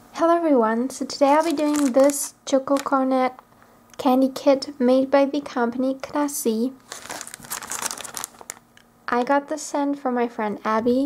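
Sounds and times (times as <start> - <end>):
plastic packet crinkling: 1.1 - 3.4, 6.8 - 8.8.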